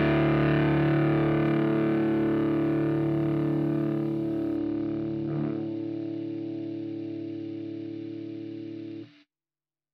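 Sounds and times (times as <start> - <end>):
guitar chord ringing out: 0.0 - 9.0.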